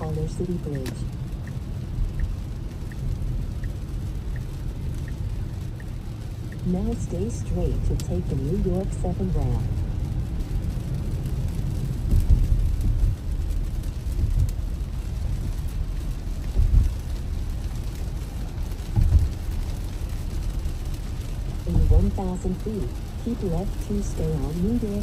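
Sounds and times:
rain on a car: 0.0s - 25.0s
road and tyre rumble: 0.0s - 25.0s
dull low thumps: 11.8s - 17.5s, 18.8s - 19.5s.

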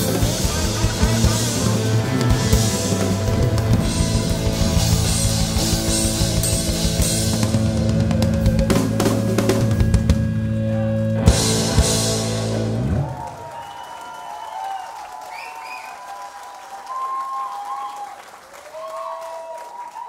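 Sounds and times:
rock band final chord: 0.0s - 13.2s
cheering voices: 10.5s - 20.0s
audience applause: 12.5s - 20.0s
whistles from crowd: 13.4s - 20.0s.

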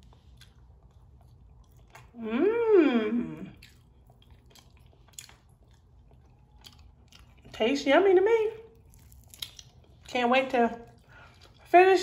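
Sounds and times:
faint chewing: 0.0s - 2.2s, 3.4s - 7.6s, 8.7s - 11.8s.

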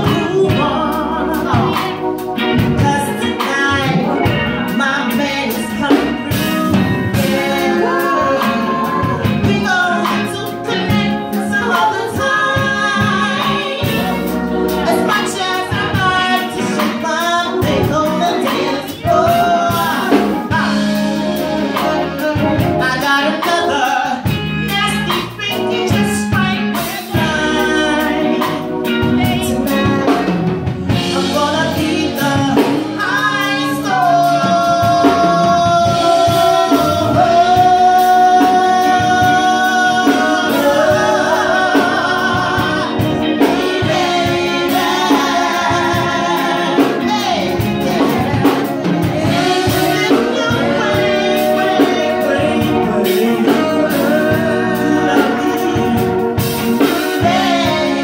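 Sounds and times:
band with bass and keyboard: 0.0s - 58.0s
woman singing into microphone: 0.0s - 58.0s.

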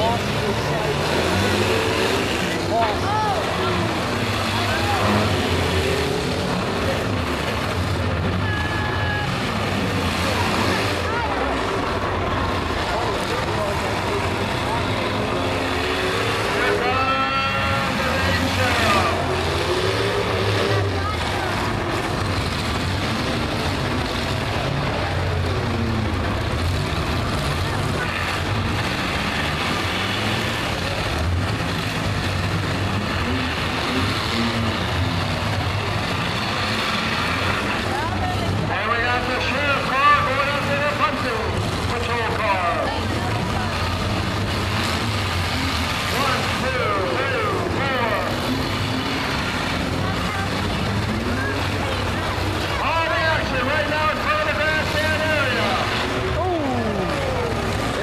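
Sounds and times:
people's voices: 0.0s - 58.0s
several car engines running loudly: 0.0s - 58.0s.

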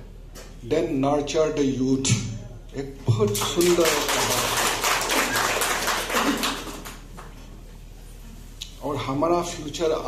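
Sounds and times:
audience applauding: 3.3s - 7.3s.

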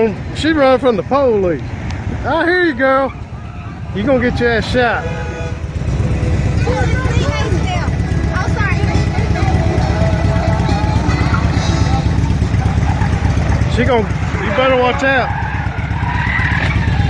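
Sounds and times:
vehicle engine rumbling: 0.0s - 17.0s
faint voices: 2.5s - 15.4s.

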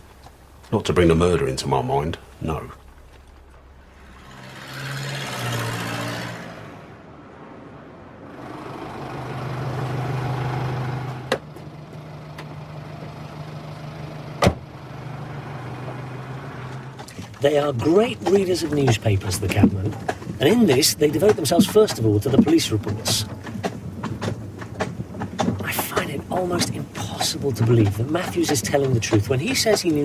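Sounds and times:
low engine hum: 0.0s - 30.0s
vehicle passing: 3.2s - 30.0s.

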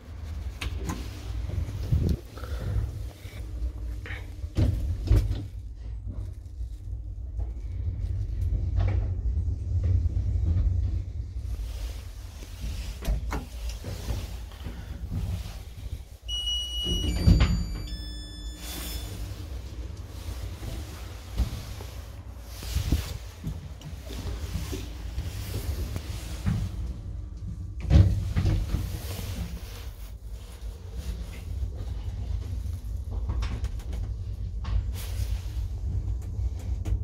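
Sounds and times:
elevator low rumble: 0.0s - 37.0s
elevator doors sliding open: 15.1s - 26.9s
elevator arriving thump: 16.3s - 19.2s.

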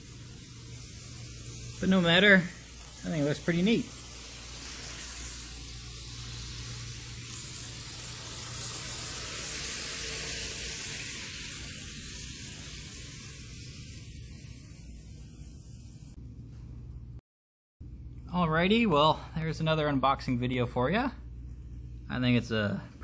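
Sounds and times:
model train wheels hissing on rails: 0.0s - 16.2s.

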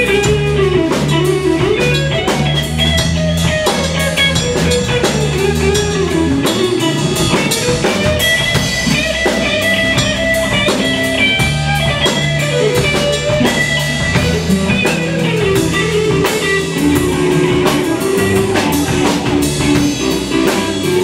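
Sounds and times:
drum kit steady beat: 0.0s - 21.0s
electric bass: 0.0s - 21.0s
electric guitar lines: 0.0s - 21.0s.

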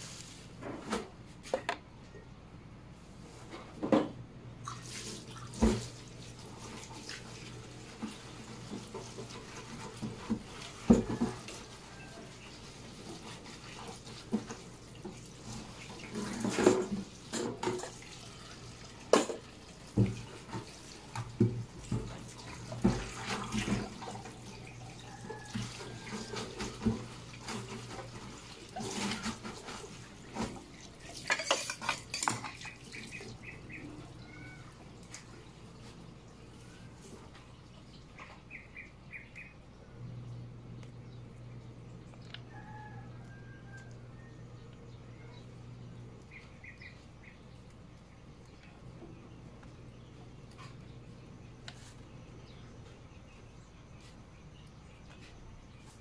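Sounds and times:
water splashing in sink: 4.6s - 37.1s.

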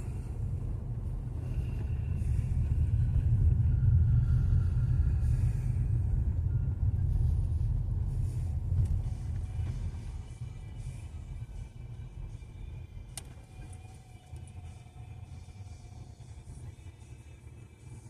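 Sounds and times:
car rumble from inside: 0.0s - 18.0s.

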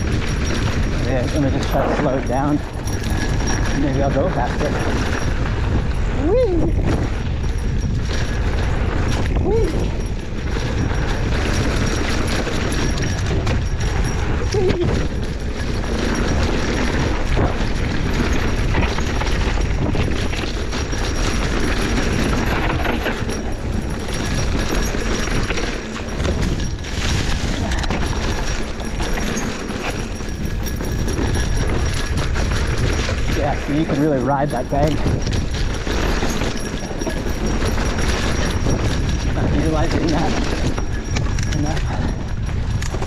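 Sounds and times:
bike rattling over bumps: 0.0s - 43.0s
tyre noise on dirt: 0.0s - 43.0s
wind rush on microphone: 0.0s - 43.0s.

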